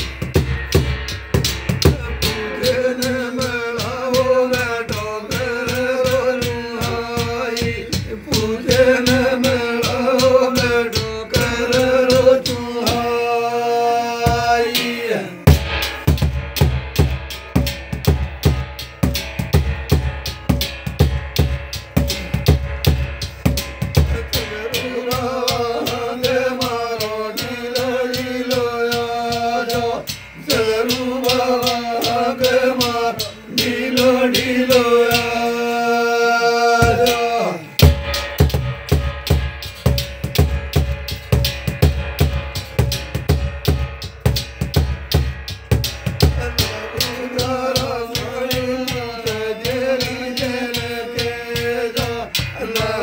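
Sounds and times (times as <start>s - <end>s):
large drum beaten with stick: 0.0s - 13.4s, 14.2s - 35.9s, 36.7s - 53.0s.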